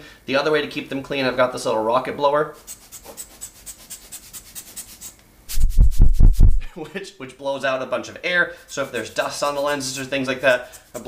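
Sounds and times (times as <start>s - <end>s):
air puffs buffeting microphone: 5.5s - 6.8s.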